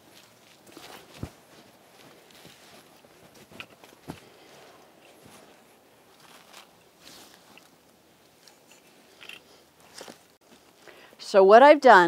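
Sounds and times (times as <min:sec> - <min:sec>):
cloth sheet rustling: 0:00.0 - 0:08.7.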